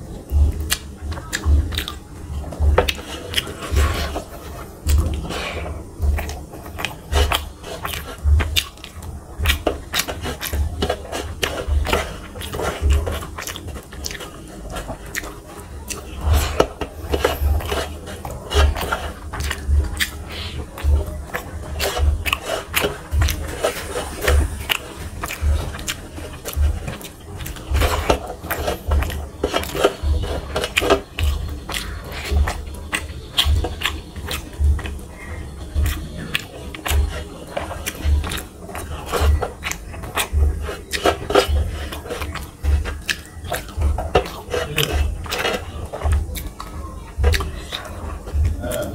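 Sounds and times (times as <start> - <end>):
close chewing and wet mouth sounds: 0.0 - 48.9.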